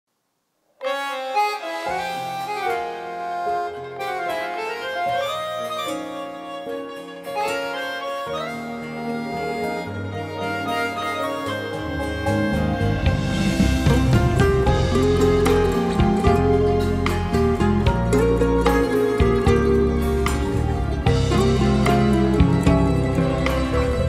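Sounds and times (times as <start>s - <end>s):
bass line: 11.7s - 24.0s.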